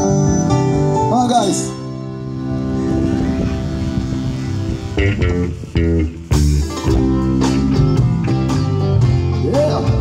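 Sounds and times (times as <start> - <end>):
live band amplified music: 0.0 - 10.0.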